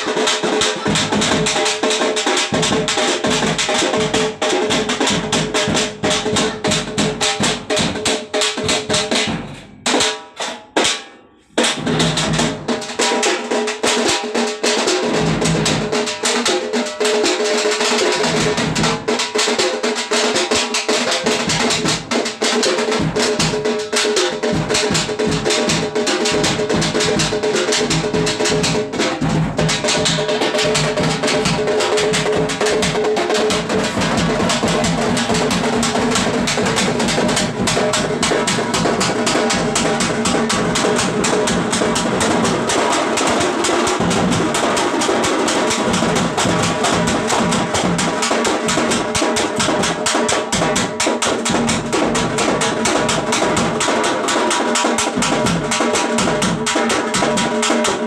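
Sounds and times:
drums beaten with sticks: 0.0 - 58.0.

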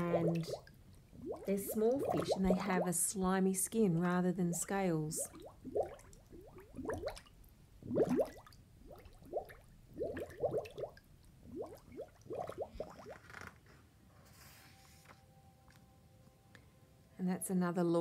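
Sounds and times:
water dripping and bubbling: 0.0 - 13.5
faint rustle: 13.2 - 15.3.

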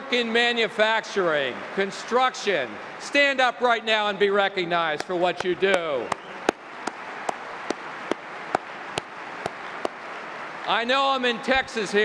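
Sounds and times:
crowd applauding: 5.5 - 10.3.

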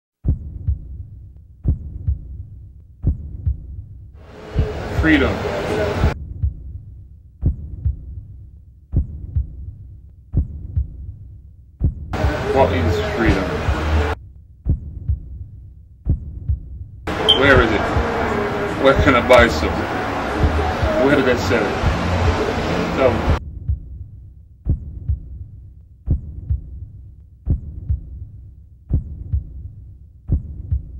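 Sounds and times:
heartbeat thumps: 0.2 - 5.0, 6.0 - 12.4, 13.6 - 18.3, 23.3 - 30.9.

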